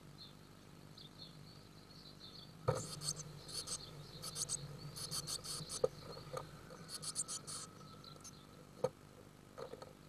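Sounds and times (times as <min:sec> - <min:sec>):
chicks chirping: 0:02.7 - 0:08.5.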